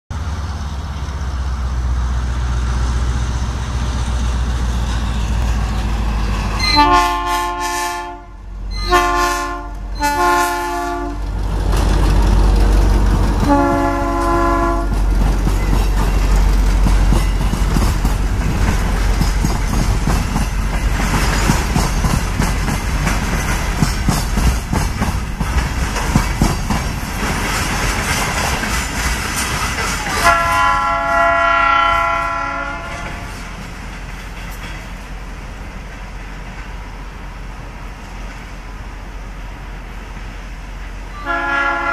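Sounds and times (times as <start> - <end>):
locomotive horn blasts: 6.6 - 11.2, 13.4 - 15.0, 30.1 - 33.3, 41.1 - 41.9
train wheels clattering on rails: 10.7 - 37.2.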